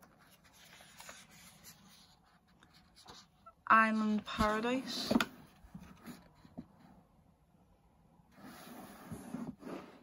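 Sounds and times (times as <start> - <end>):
book page turning: 0.0 - 3.4
soft paper brushing: 0.0 - 3.5.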